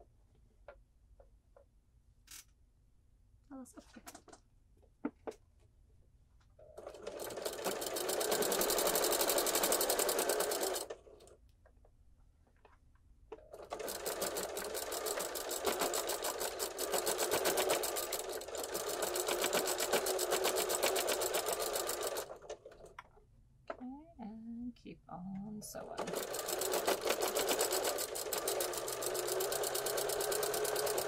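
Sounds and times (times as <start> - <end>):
electric sewing machine stitching: 6.6 - 11.3, 13.4 - 23.0, 26.0 - 31.0.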